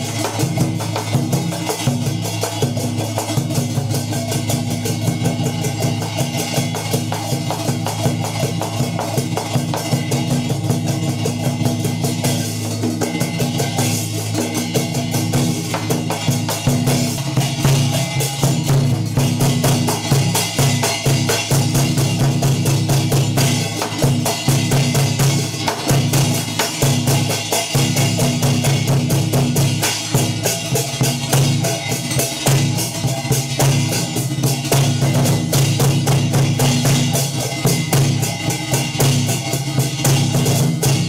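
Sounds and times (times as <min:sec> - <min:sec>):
fast drumming: 0:00.0 - 0:41.0.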